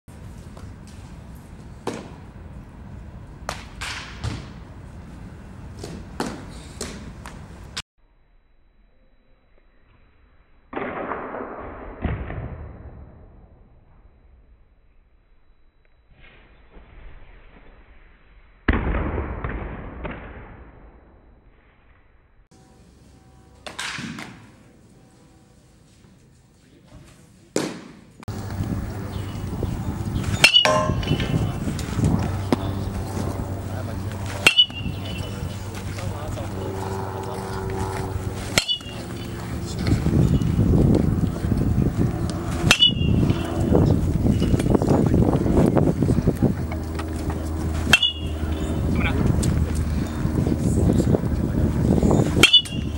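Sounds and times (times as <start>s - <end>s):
baseballs smacking into mitts: 27.6s - 28.6s
low rumble: 28.3s - 52.9s.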